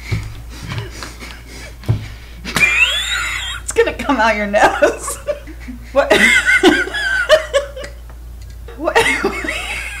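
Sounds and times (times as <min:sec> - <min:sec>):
woman squealing with laughter: 0:02.6 - 0:03.7.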